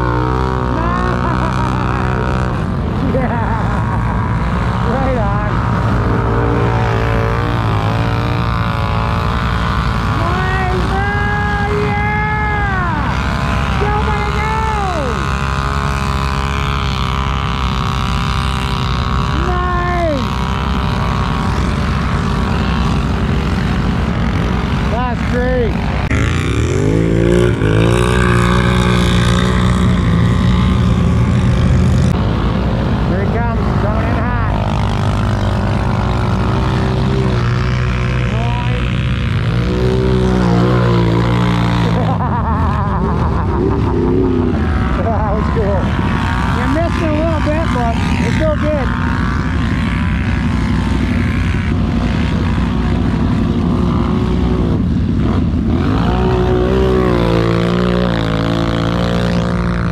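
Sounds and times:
atv engines revving in mud: 0.0s - 59.9s.

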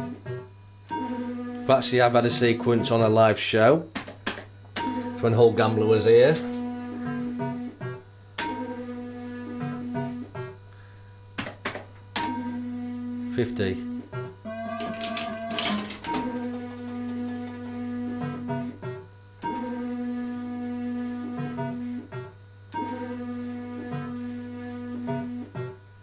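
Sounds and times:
fruit machine electronic tone: 4.8s - 10.6s, 12.2s - 25.8s.

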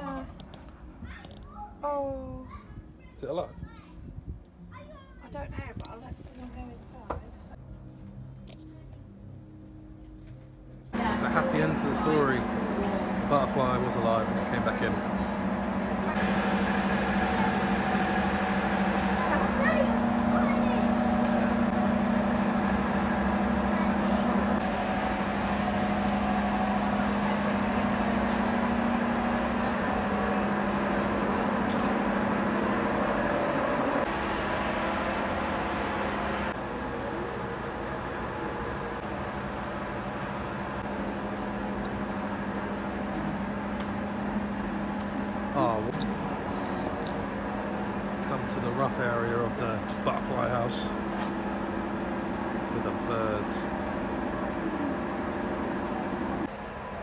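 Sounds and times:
ventilation fan hum: 0.0s - 57.0s.

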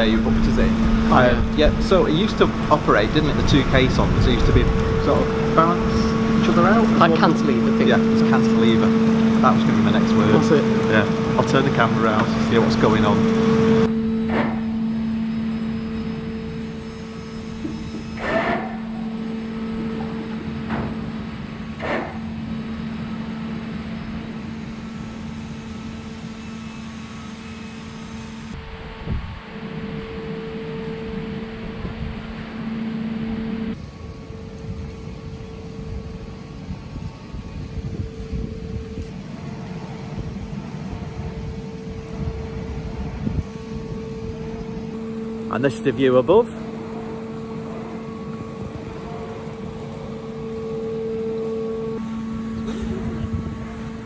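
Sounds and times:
low rumble: 0.0s - 18.2s, 28.0s - 45.5s
droning tone: 0.0s - 54.0s
low mechanical hum: 0.0s - 54.0s.

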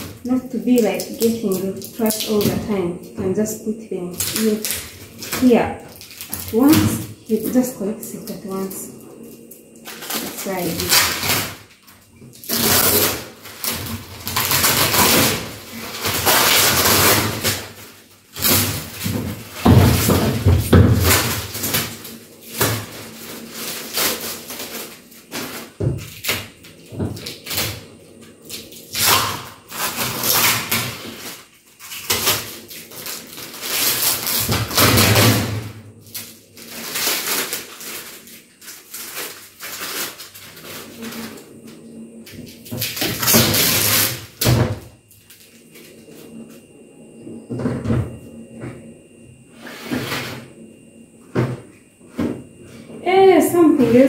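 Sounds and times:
plastic film crinkling and tearing: 0.0s - 2.6s, 4.1s - 7.0s, 9.4s - 20.4s, 21.0s - 26.6s, 28.5s - 35.4s, 36.0s - 41.4s, 42.6s - 44.4s.

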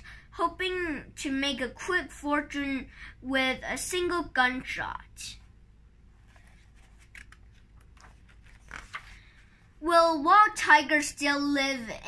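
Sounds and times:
book page turning: 6.1s - 9.5s
soft paper crackles: 6.1s - 9.7s.

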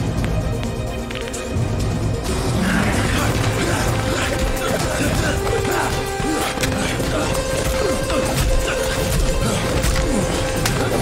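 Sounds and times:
action film score: 0.0s - 11.0s.

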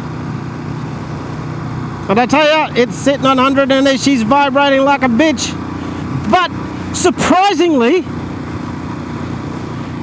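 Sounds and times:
motorcycle engine cruising: 0.0s - 10.0s
wind and road noise: 0.0s - 10.0s.

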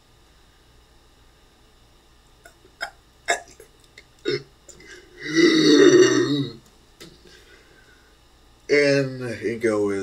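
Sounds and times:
person making low rough groan: 4.2s - 6.6s.

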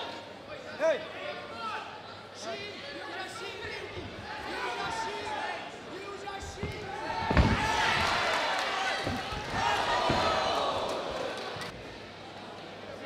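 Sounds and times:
crowd shouting and cheering: 4.1s - 11.8s.

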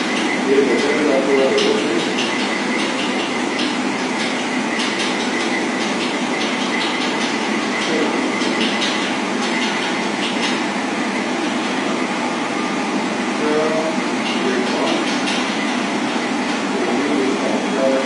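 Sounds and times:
wheels clicking on rails: 0.0s - 11.8s, 14.2s - 18.0s.

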